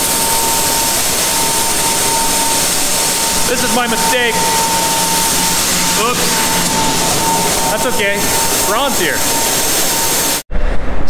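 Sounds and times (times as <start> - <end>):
low steady hum: 0.0 - 10.3
grain vacuum rushing air: 0.0 - 10.4.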